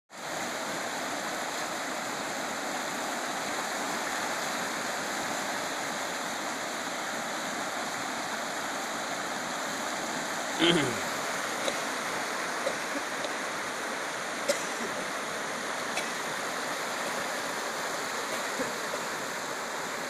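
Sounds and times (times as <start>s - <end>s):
floodwater rushing in a river: 0.1s - 20.0s.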